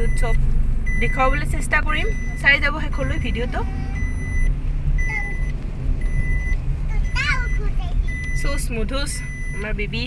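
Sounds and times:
car warning chime beeping: 0.0 - 10.0
road and engine rumble: 0.0 - 10.0.

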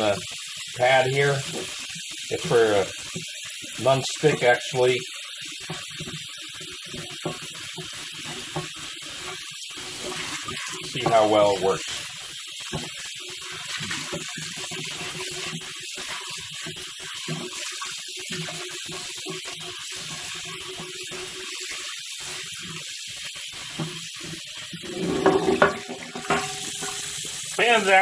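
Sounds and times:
tap water splashing into pan: 0.0 - 28.0
pan being scrubbed: 0.8 - 28.0.

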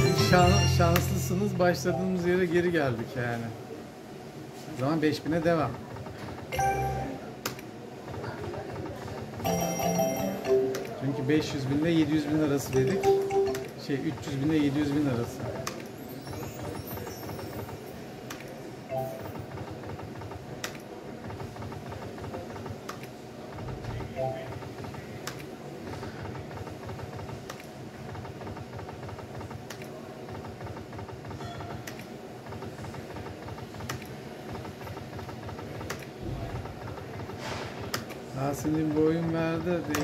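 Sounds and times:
slot machine button clicks: 0.0 - 2.2, 6.5 - 7.5, 9.4 - 11.1, 12.7 - 13.8
slot machine sounds: 0.0 - 2.5, 6.5 - 7.4, 9.4 - 11.5, 12.6 - 14.1, 18.9 - 19.5, 24.2 - 24.7.

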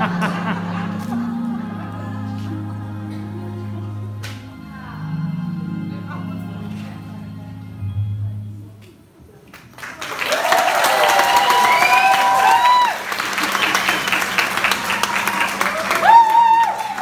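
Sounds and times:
audience applauding and cheering: 9.6 - 17.0
whoops: 10.2 - 17.0.

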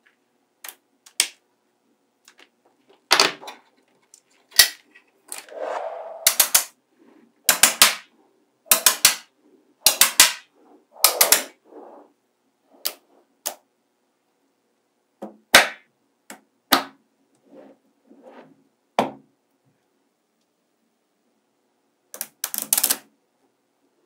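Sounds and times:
magnetic balls snapping together: 0.6 - 1.4, 6.2 - 6.7, 7.5 - 8.1, 8.7 - 11.6, 22.2 - 23.1.

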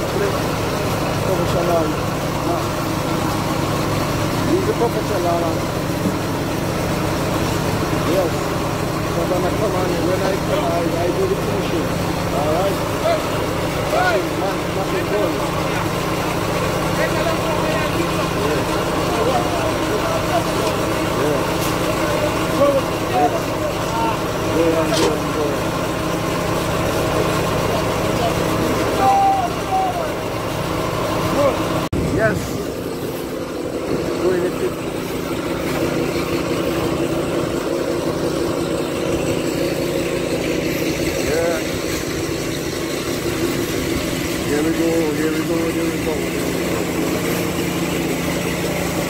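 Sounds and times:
voices in background: 0.0 - 30.5
small petrol engine running: 0.0 - 49.0.

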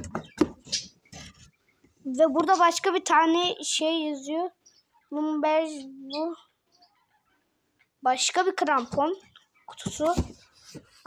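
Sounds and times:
cardboard boxes tapping and knocking: 0.0 - 1.3, 9.8 - 11.0.

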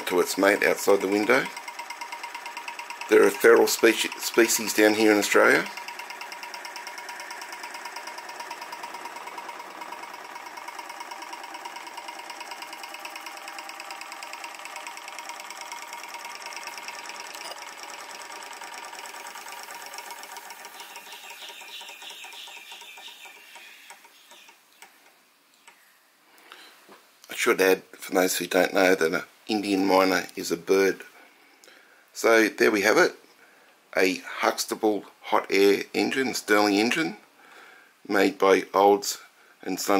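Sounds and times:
hot air engine running: 0.9 - 21.4.

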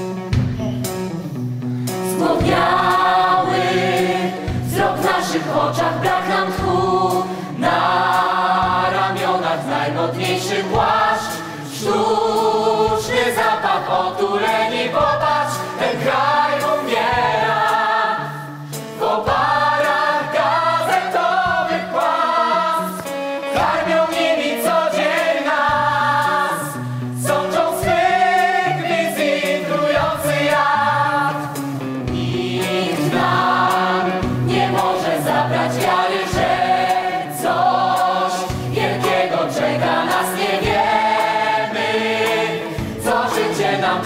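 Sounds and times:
cast singing together: 2.1 - 44.0
band accompaniment: 23.0 - 44.0.

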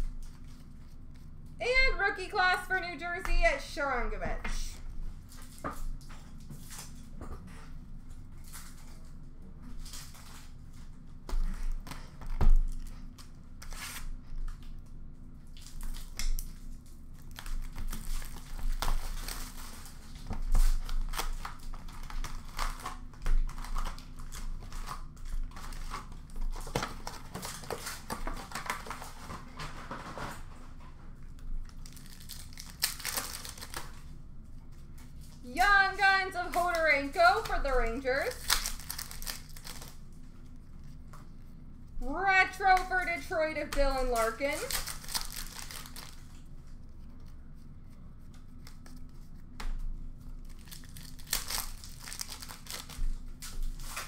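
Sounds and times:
steady low hum: 0.0 - 54.0
card wrappers tearing and crinkling: 15.5 - 29.4, 31.4 - 34.1, 35.0 - 40.2, 42.5 - 46.5, 50.2 - 54.0.

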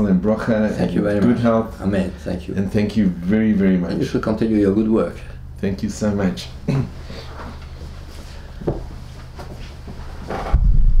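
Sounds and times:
room hum: 0.0 - 11.0
microphone handling rumble: 8.6 - 11.0.

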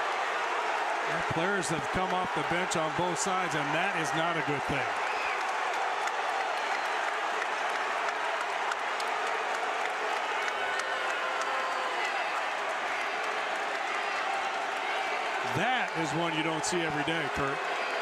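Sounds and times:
scattered clapping: 0.0 - 18.0
crowd voices din: 1.1 - 4.9, 15.4 - 18.0.

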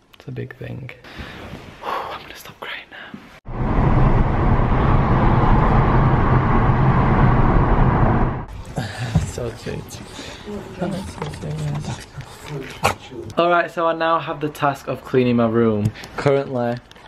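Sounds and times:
car road and engine noise: 3.5 - 8.5.

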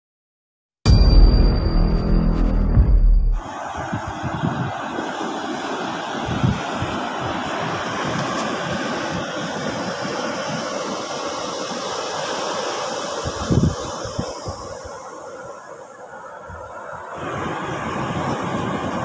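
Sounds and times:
music jingle: 0.9 - 3.4
wind noise on microphone: 2.4 - 19.0
sea surf: 3.4 - 19.0.

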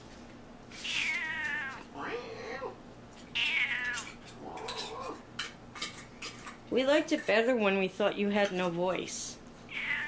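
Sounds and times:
cat meowing: 0.8 - 5.2, 9.7 - 10.0.

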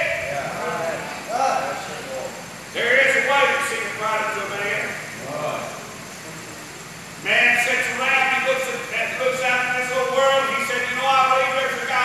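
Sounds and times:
man preaching: 0.0 - 5.7, 7.2 - 12.0.

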